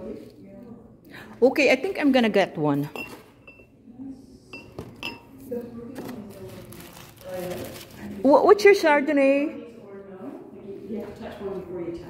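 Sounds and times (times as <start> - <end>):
glass clinks: 2.9 - 3.7, 4.5 - 5.3
quiet talk: 3.7 - 12.0.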